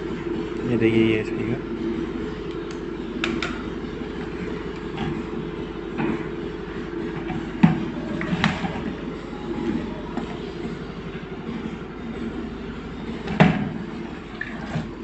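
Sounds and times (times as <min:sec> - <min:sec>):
low hum: 0:00.0 - 0:15.0.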